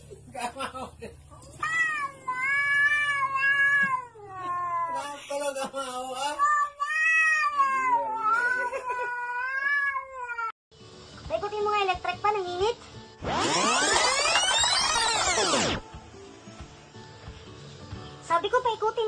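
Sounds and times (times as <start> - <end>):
cat wailing meows: 1.6 - 5.1, 6.4 - 10.5.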